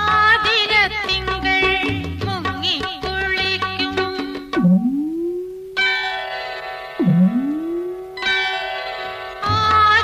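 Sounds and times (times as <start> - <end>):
instrumental film music: 3.0 - 10.0
gliding tone: 7.0 - 8.3
sustained chord: 7.0 - 8.5.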